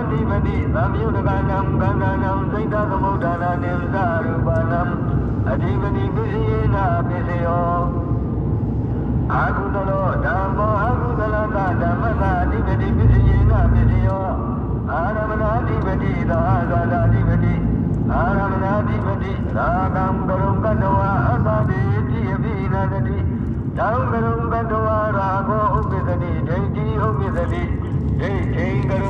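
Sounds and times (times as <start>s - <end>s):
man chanting: 0.0s - 8.1s, 9.3s - 29.0s
car driving rumble: 0.0s - 29.0s.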